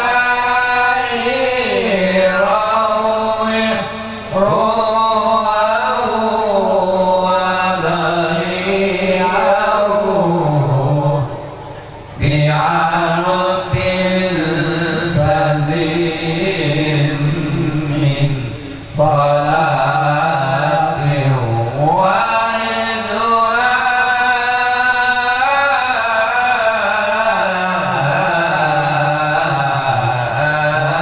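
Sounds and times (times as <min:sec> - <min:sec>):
men chanting over loudspeakers: 0:00.0 - 0:31.0.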